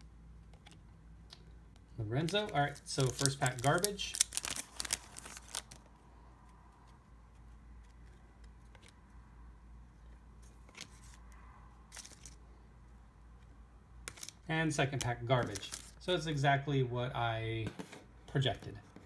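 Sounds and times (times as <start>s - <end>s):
foil wrapper tearing and crinkling: 2.2s - 5.9s, 11.9s - 12.3s, 14.1s - 14.4s, 15.0s - 16.0s
cards sliding and clicking: 10.4s - 11.2s.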